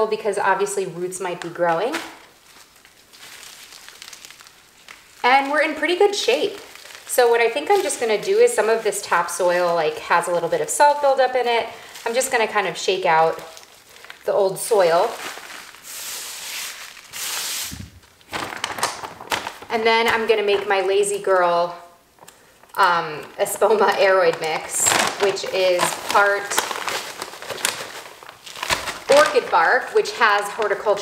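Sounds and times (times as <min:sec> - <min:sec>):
potting soil rustling and crumbling: 0:00.0 - 0:31.0
light crackles: 0:01.2 - 0:10.0, 0:13.2 - 0:30.7.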